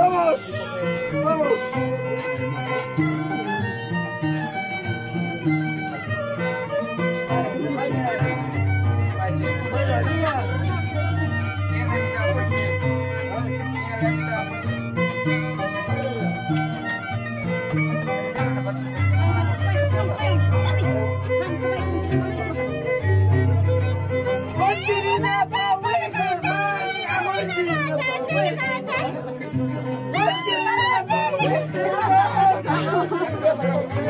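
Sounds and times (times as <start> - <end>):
harp playing: 0.0 - 34.0
violin playing: 0.0 - 34.0.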